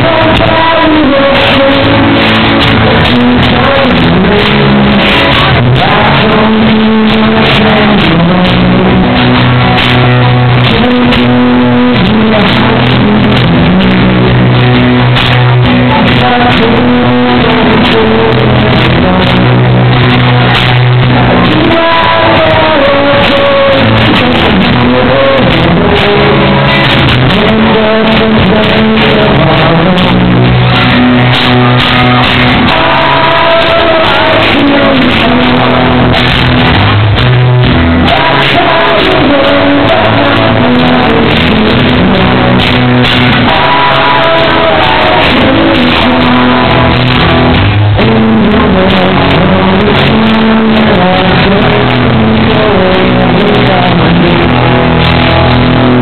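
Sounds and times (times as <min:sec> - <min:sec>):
person singing: 0:00.0 - 0:56.0
pop-rock band playing live: 0:00.0 - 0:56.0
strummed acoustic guitar: 0:00.0 - 0:56.0.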